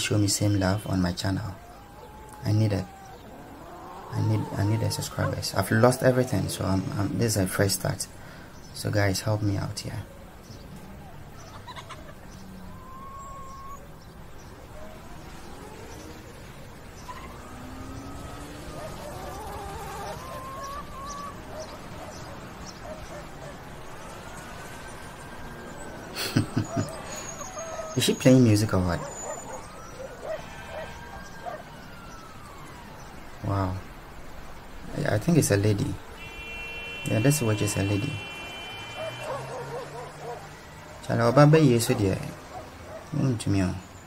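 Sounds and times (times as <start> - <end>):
faint animal call: 0.0 - 7.6, 10.8 - 13.9, 17.0 - 23.6, 26.1 - 31.7, 36.2 - 43.2
distant siren wailing: 0.0 - 8.0, 9.8 - 43.2
background hiss: 0.0 - 44.0.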